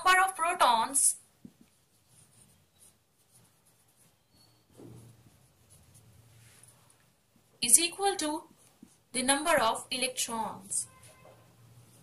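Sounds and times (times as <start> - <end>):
marker writing on whiteboard: 0.0 - 9.8.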